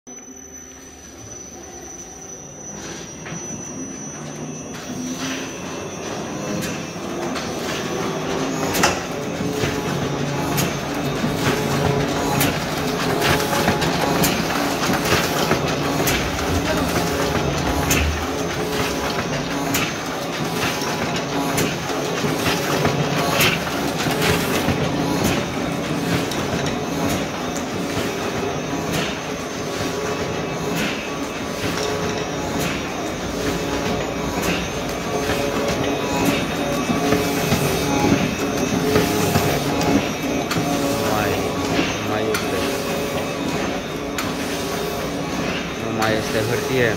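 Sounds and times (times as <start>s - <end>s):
sharp machine clack: 2.7s - 46.9s
die-cutting machine clattering: 6.1s - 46.9s.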